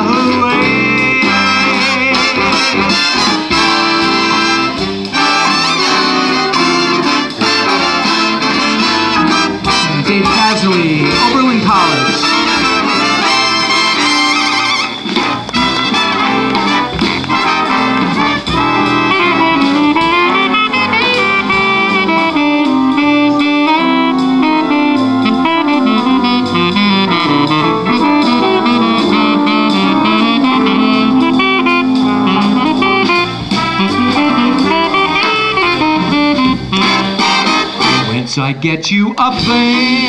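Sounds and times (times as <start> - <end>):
jazz saxophone solo: 0.0 - 38.2, 39.5 - 40.0
big band accompaniment: 0.0 - 40.0.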